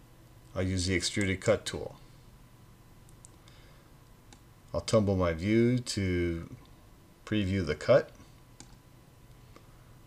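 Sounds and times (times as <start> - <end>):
computer mouse clicks: 3.1 - 3.4, 4.3 - 4.5, 8.6 - 9.7.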